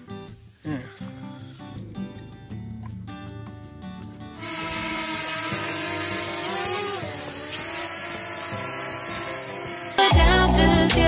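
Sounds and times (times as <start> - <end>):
loud background music with beat: 10.1 - 11.0.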